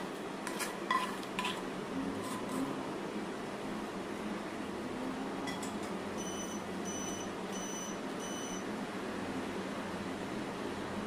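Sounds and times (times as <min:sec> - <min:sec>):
fan-like hum: 0:00.0 - 0:11.0
short electronic beeps: 0:06.2 - 0:08.6.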